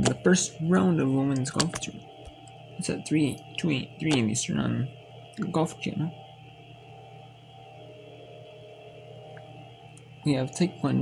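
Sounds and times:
quiet steady hum with tones: 0.0 - 11.0.

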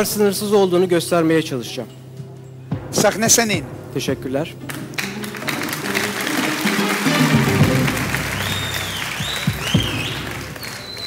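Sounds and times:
tv show music: 2.7 - 11.0
audience applauding: 4.7 - 11.0.

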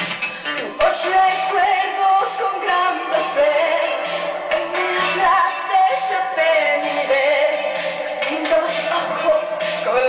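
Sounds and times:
woman singing into microphone: 0.5 - 10.0.

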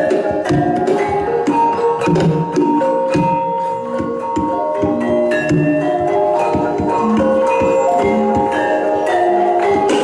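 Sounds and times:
drum strokes: 0.0 - 10.0
ringing metallophone notes: 0.0 - 10.0.

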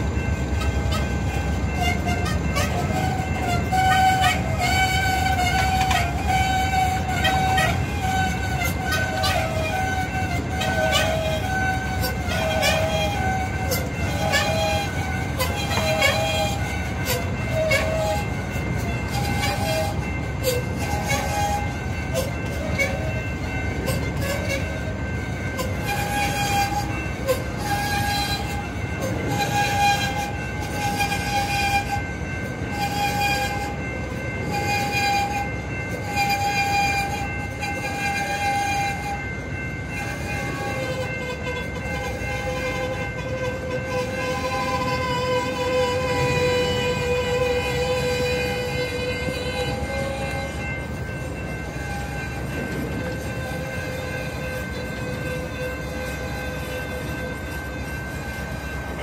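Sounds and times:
level-crossing bell dinging: 0.0 - 59.0
wheels clicking over rail joints: 0.0 - 59.0.

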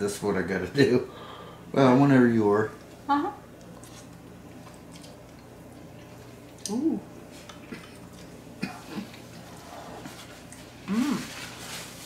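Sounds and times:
person humming: 6.6 - 7.1, 10.8 - 11.3.

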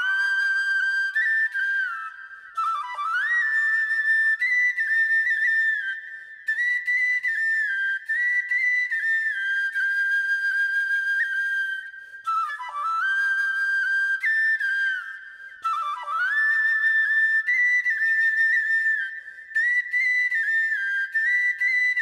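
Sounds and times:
solo flute melody: 0.0 - 22.0.

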